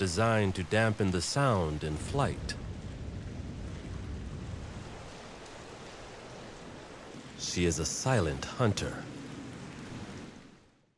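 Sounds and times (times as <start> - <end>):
water rushing: 0.0 - 10.9
wind: 0.0 - 10.9.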